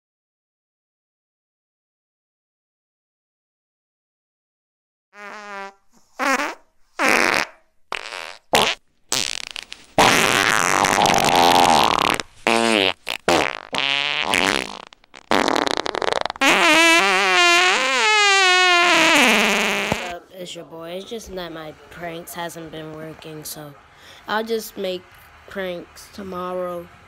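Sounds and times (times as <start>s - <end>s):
distorted fart sound effects: 5.2s - 20.2s.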